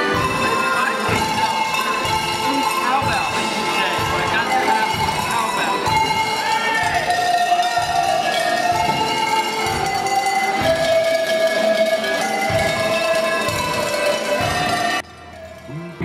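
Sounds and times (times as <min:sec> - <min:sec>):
cowbell melody: 0:00.0 - 0:16.0.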